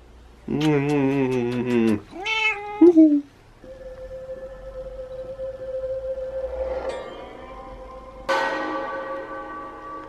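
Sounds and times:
cat meowing: 0:02.1 - 0:03.0
steady single tone: 0:03.6 - 0:10.0.

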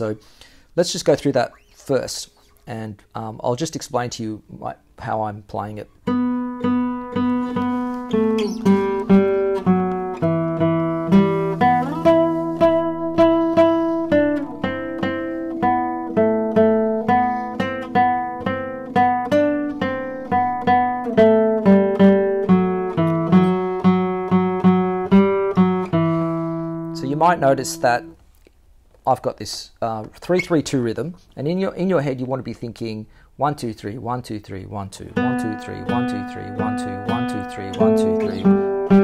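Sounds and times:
nylon-string guitar playing: 0:06.0 - 0:28.2, 0:35.2 - 0:39.0.

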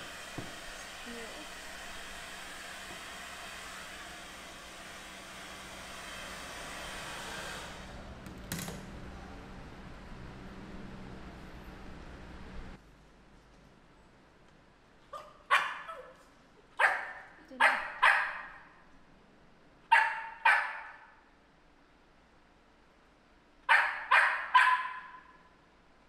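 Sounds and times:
dog barking: 0:15.1 - 0:16.2, 0:16.8 - 0:18.8, 0:19.9 - 0:21.2, 0:23.7 - 0:25.5.

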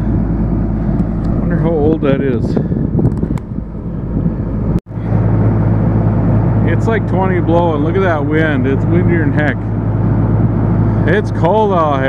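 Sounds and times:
diesel engine humming: 0:00.0 - 0:12.0
wind rushing across microphone: 0:00.0 - 0:12.0
sharp clicks: 0:03.0 - 0:03.6.

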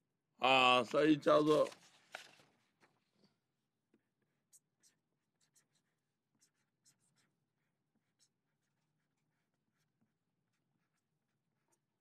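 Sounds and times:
marker scratching on paper: 0:03.9 - 0:12.0.

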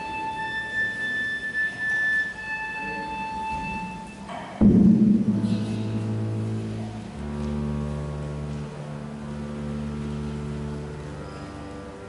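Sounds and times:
orchestral high sustained note: 0:00.0 - 0:12.0.

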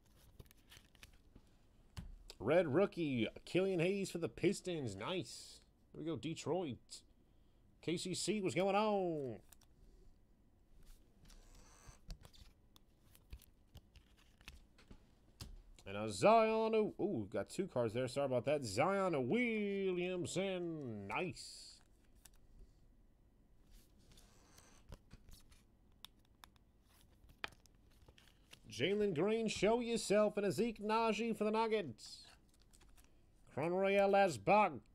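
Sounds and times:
trading cards clicking and rustling: 0:00.0 - 0:01.4, 0:11.3 - 0:15.8, 0:24.1 - 0:29.7, 0:32.3 - 0:33.2
cards sliding across table: 0:10.8 - 0:15.0, 0:23.7 - 0:25.6.

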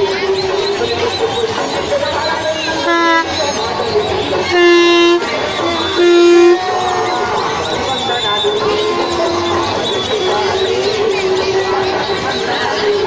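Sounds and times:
crowd din: 0:00.0 - 0:13.0
horn toots: 0:02.8 - 0:03.7, 0:04.4 - 0:06.8.

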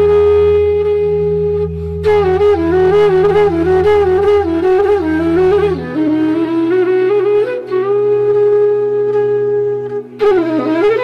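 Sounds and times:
low drone: 0:00.0 - 0:07.2
flute melody: 0:00.0 - 0:11.0.

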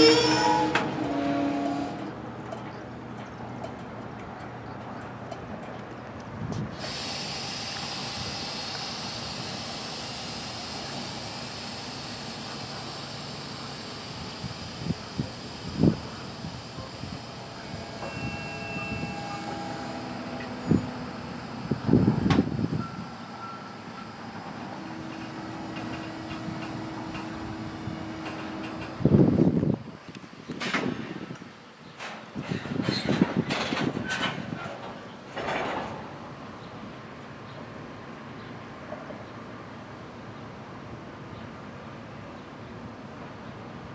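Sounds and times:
wheel squeals: 0:00.0 - 0:02.1, 0:16.6 - 0:27.4
rail cars clanking and thumping: 0:00.0 - 0:43.9
train wheels rumbling on rail: 0:00.0 - 0:43.9
high hiss: 0:06.8 - 0:29.9.

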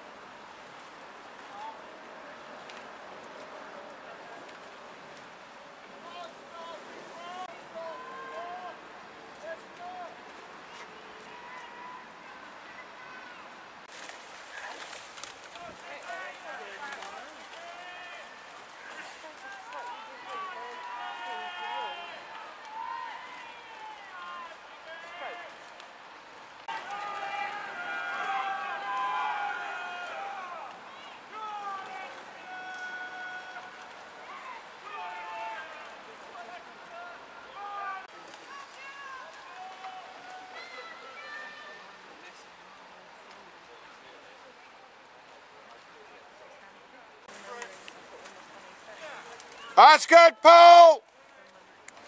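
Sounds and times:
spectators talking and calling out: 0:47.3 - 0:51.0.

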